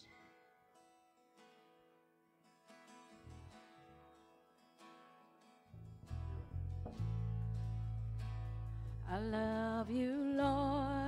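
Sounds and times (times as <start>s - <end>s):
acoustic guitar strumming: 0.0s - 11.0s
low bass: 5.8s - 11.0s.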